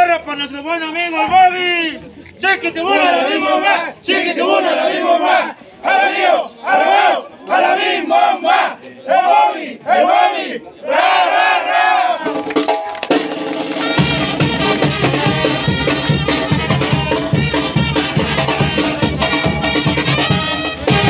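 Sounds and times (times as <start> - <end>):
men shouting rhythmic cheer: 2.4 - 12.4, 14.7 - 20.6
brass band playing: 11.0 - 21.0
drums: 12.2 - 21.0.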